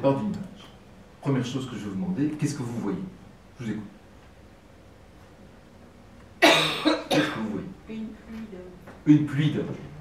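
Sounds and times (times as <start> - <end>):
loud cough: 6.4 - 7.6.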